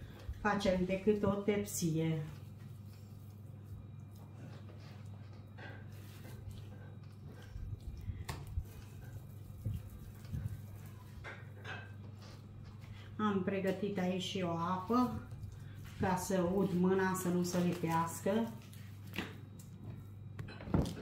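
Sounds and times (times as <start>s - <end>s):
soft squishing of meat mixture: 0.0s - 20.1s
steady low hum: 0.0s - 21.0s.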